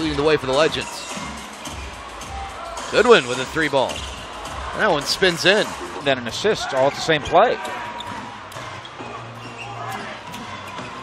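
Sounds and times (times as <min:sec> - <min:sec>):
murmur of crowd: 0:00.0 - 0:11.0.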